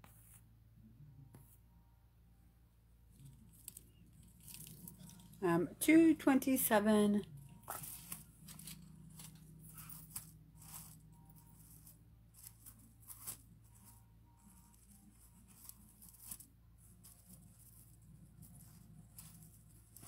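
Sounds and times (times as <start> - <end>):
low steady hum: 0.0 - 20.0
jewelry clicks and rustles: 3.2 - 5.4, 7.3 - 20.0.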